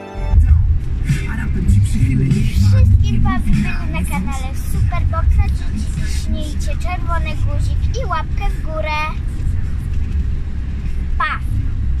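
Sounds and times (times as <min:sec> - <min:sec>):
car interior rumble: 0:00.2 - 0:12.0.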